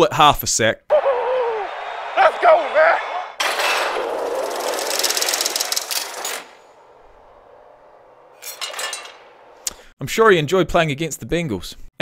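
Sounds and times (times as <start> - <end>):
mechanical rattling and whooshing: 3.4 - 9.4.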